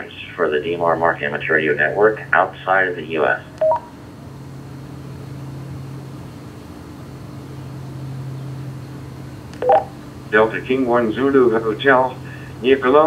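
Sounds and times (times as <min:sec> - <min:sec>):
radio low steady hum: 0:00.0 - 0:03.9, 0:07.6 - 0:13.0
two-note beep: 0:09.6 - 0:09.9.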